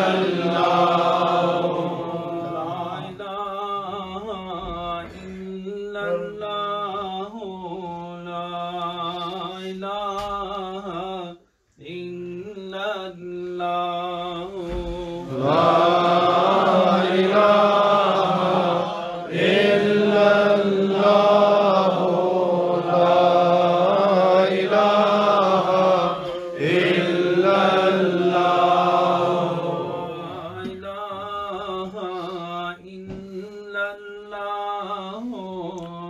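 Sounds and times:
men chanting: 0.0 - 10.0, 10.6 - 35.7.

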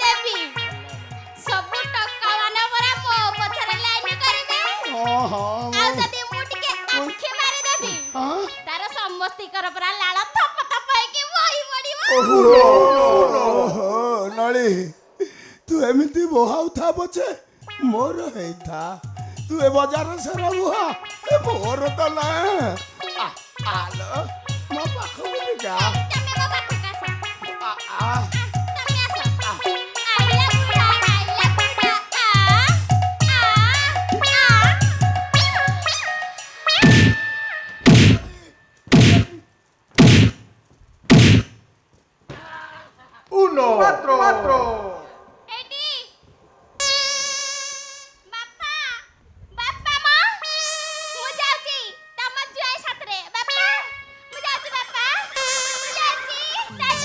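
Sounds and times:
steady drum beat: 0.0 - 6.6, 17.7 - 23.0, 23.6 - 36.0, 36.8 - 37.2, 37.9 - 39.4, 40.0 - 40.4, 41.1 - 41.6, 56.7 - 57.0
instrumental music: 0.0 - 9.8, 17.6 - 40.4, 50.4 - 57.0.

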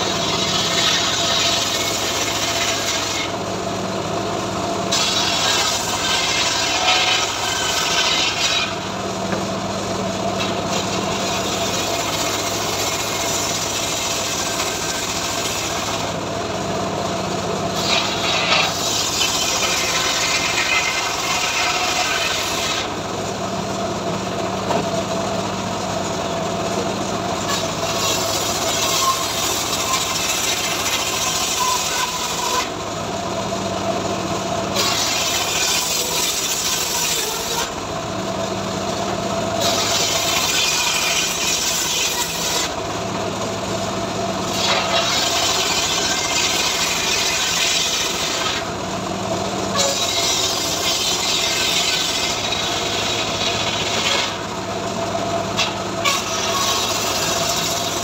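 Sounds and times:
saw blade rasping through wood: 0.0 - 3.5, 4.9 - 9.4, 10.2 - 16.2, 17.7 - 23.0, 27.4 - 32.8, 34.7 - 37.8, 39.1 - 42.8, 44.4 - 48.8, 49.7 - 54.6, 55.5 - 58.0
saw machine hum: 0.0 - 58.0.

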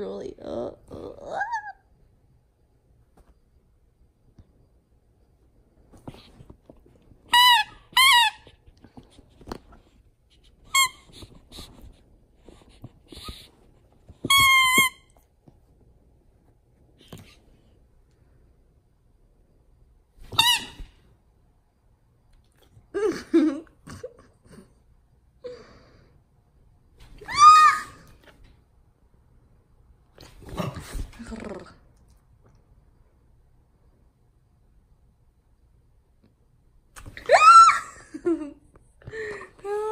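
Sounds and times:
dog growling and whining: 0.9 - 1.8
dog toy squeaker squeaking: 7.3 - 8.5, 10.7 - 11.2, 14.2 - 15.1, 20.3 - 20.9.

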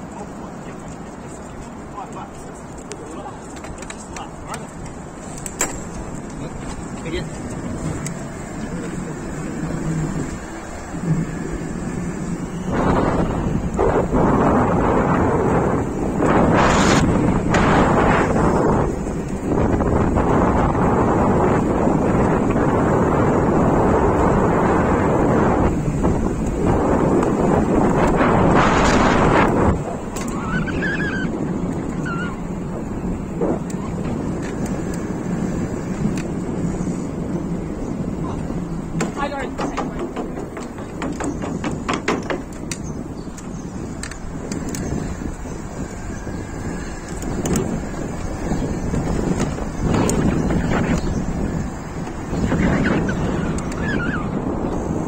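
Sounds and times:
wind rushing over microphone: 0.0 - 55.0.

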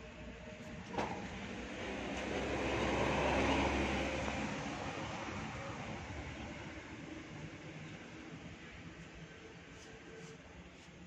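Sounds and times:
vehicle passing by: 1.5 - 6.4.

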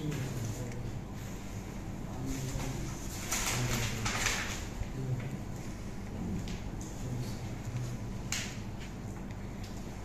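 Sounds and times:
steady low hum: 0.0 - 10.0
paper rustling: 2.2 - 4.8.

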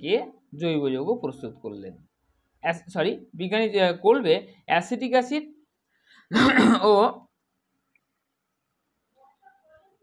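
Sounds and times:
person clearing throat: 6.3 - 7.0.

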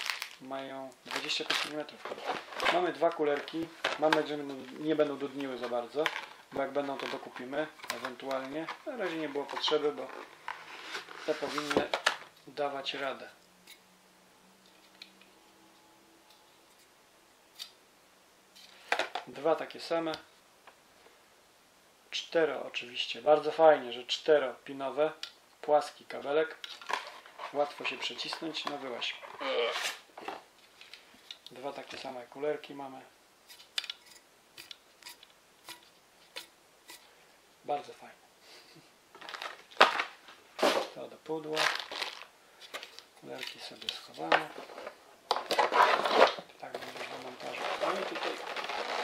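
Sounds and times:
packaging crinkling: 0.0 - 12.3, 39.1 - 49.0.

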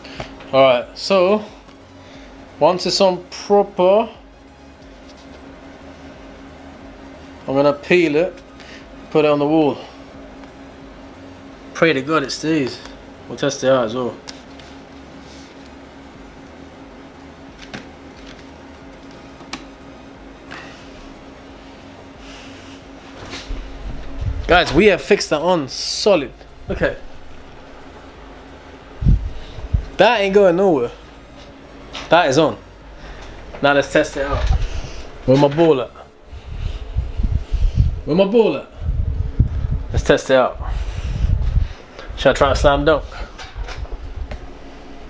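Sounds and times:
steady low hum: 0.0 - 45.0
dull low thumps and rumbles: 23.5 - 25.5, 26.3 - 30.1, 32.8 - 35.4, 36.0 - 45.0.

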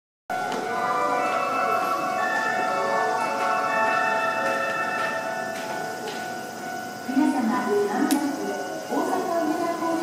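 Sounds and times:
electronic railway warning chimes: 0.3 - 10.0.

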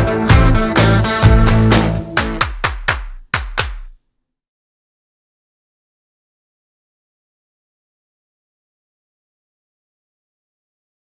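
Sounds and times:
rock song percussive hits: 0.0 - 4.0.

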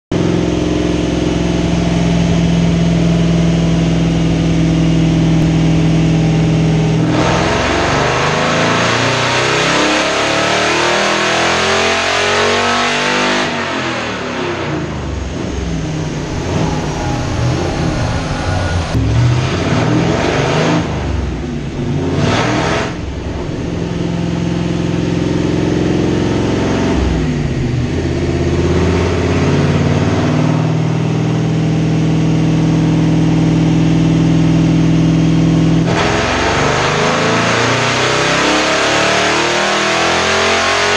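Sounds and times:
car engine revving under load: 0.2 - 40.9.

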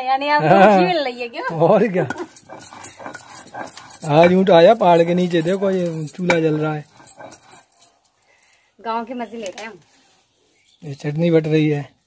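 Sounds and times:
stone scraping on grinding slab: 2.0 - 7.9.

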